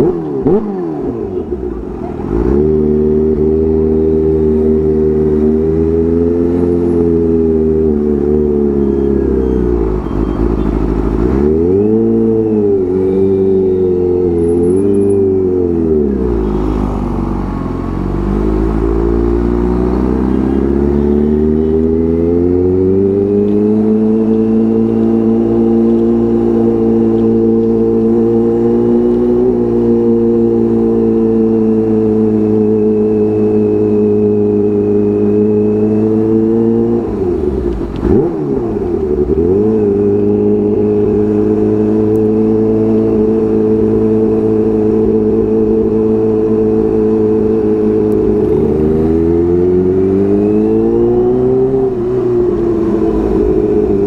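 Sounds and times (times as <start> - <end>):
motorcycle engine while riding: 0.0 - 54.0.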